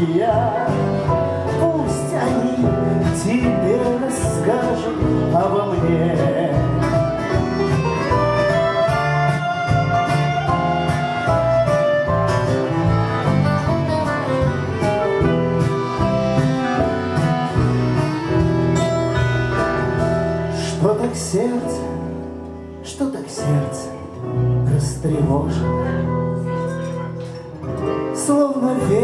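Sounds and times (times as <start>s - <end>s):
strummed acoustic guitar: 0.0s - 21.6s, 25.6s - 29.0s
drums: 0.0s - 23.9s, 24.7s - 29.0s
bass guitar: 0.0s - 29.0s
keyboard: 0.0s - 29.0s
clarinet: 6.8s - 20.1s, 25.2s - 28.2s
button accordion: 7.2s - 19.8s.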